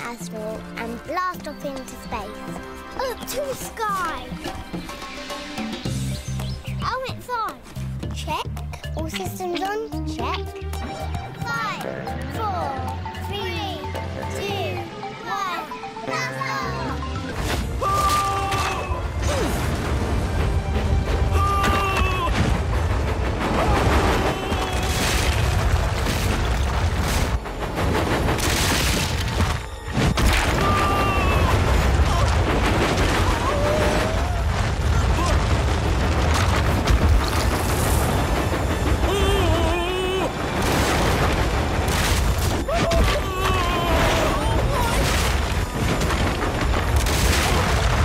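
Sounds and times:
action soundtrack music: 0.0s - 48.0s
booms and crashes: 17.4s - 48.0s.

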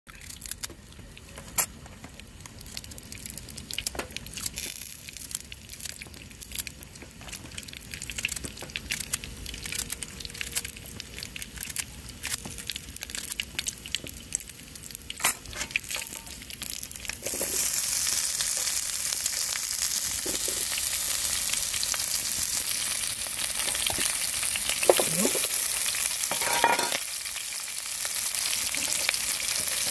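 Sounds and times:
frying sizzle in a pan: 0.1s - 29.9s.

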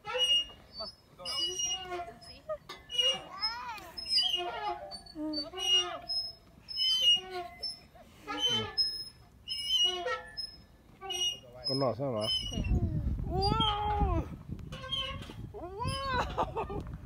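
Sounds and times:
playground swing squeaking: 0.0s - 16.9s.

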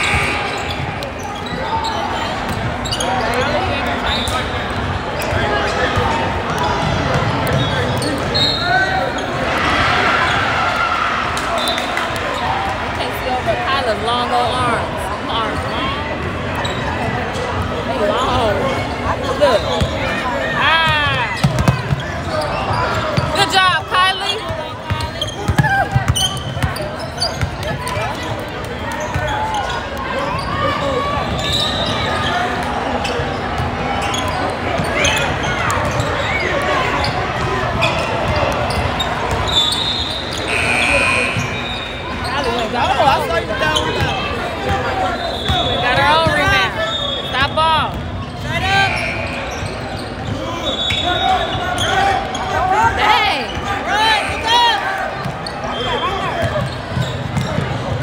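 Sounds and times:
sneakers squeaking: 0.0s - 58.0s
voices of crowd: 0.0s - 58.0s.

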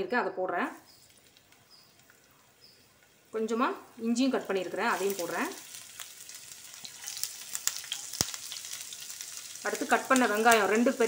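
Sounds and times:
garlic sizzling in hot oil: 0.6s - 11.0s
crackling oil pops: 0.9s - 2.4s, 5.0s - 9.4s.

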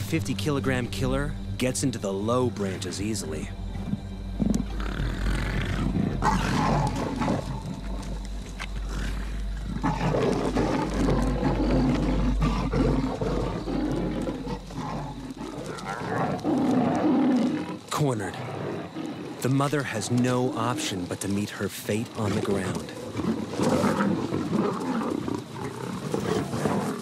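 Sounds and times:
lions and leopard calling aggressively: 0.0s - 27.0s.

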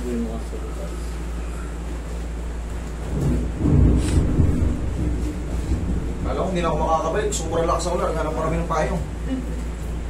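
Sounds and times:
low rumble: 2.5s - 9.3s.

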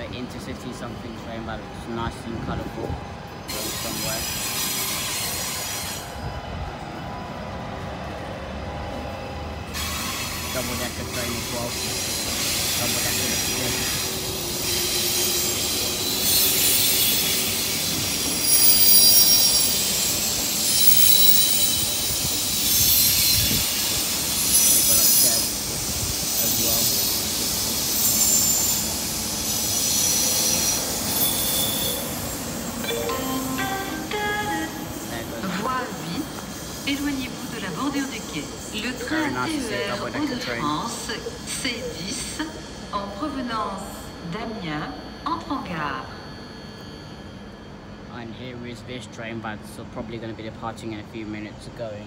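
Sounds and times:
train rolling past: 0.0s - 52.0s
wheels squealing against rails: 0.0s - 52.0s.

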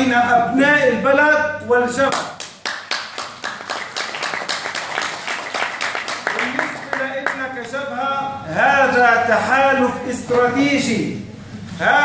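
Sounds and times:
audience clapping: 2.1s - 7.8s.

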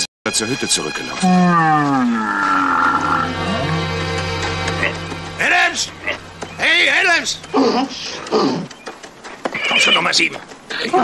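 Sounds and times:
background music: 0.0s - 11.0s
bear roaring: 1.2s - 4.0s.

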